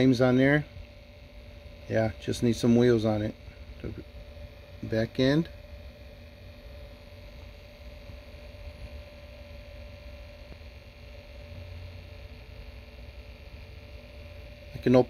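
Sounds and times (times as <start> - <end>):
motorized turntable humming: 0.0 - 15.0.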